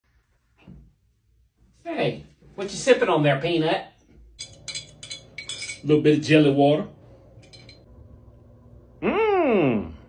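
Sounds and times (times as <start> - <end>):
spoon clinking in glass jar: 4.4 - 5.9, 7.4 - 7.8.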